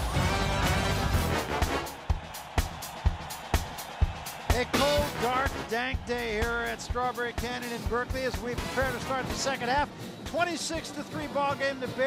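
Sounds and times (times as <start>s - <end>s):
music with drum beat: 0.0s - 12.0s.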